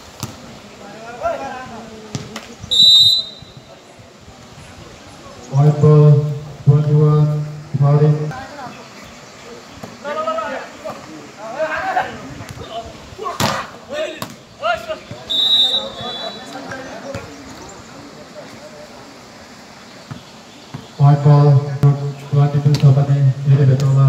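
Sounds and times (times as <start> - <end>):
high whistle tone: 2.7 - 3.6, 15.3 - 16.5
men calling out: 10.0 - 17.4.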